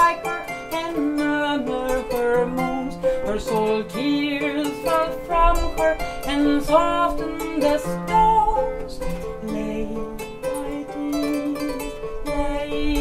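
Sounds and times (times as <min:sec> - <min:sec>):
plucked harp-lute strings: 0:00.0 - 0:13.0
woman singing: 0:00.0 - 0:13.0.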